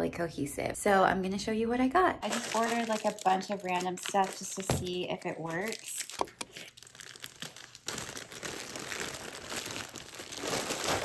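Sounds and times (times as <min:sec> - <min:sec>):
plastic bag crinkling: 0:02.2 - 0:11.0.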